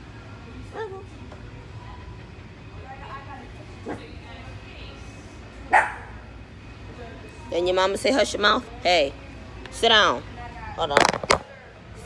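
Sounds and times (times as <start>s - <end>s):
dog barking: 5.7s - 6.1s.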